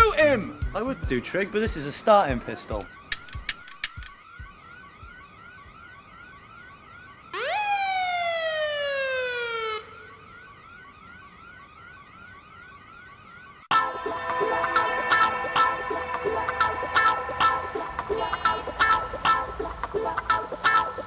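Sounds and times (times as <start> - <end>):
police siren yelp: 0.0 - 3.1, 4.0 - 21.0
sharp clicks: 2.8 - 4.3
siren whoop: 4.1 - 21.0.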